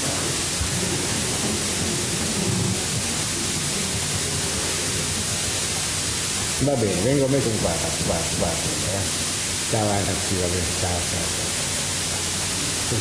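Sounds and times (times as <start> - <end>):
recording hiss: 0.0 - 13.0.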